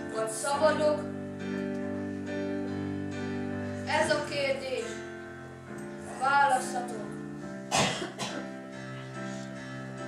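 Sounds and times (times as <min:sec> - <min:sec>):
soft background music: 0:00.0 - 0:10.0
person coughing: 0:07.7 - 0:08.6.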